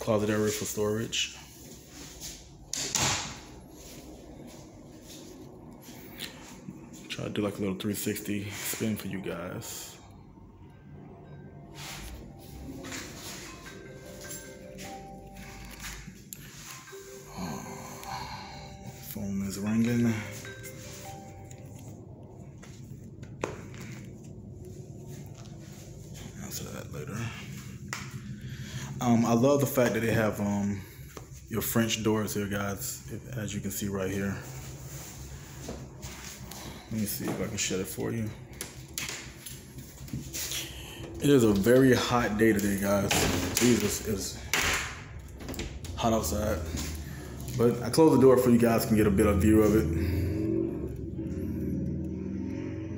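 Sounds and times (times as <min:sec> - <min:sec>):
faint background music: 0:00.0 - 0:52.9.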